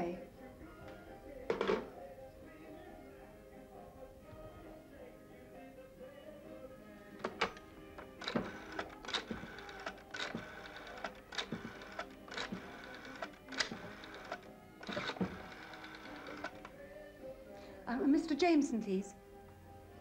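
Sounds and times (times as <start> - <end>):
quiet background music: 0.0 - 20.0
telephone dial clicks: 7.2 - 16.8.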